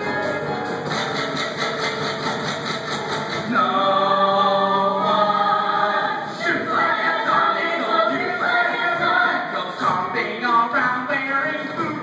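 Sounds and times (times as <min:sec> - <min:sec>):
instrumental accompaniment: 0:00.0 - 0:03.6
cast singing together: 0:03.4 - 0:12.0.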